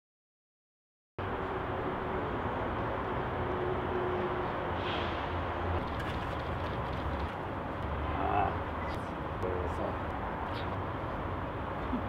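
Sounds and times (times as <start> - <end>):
traffic rumble: 1.2 - 12.0
faint voice speaking: 8.1 - 8.6.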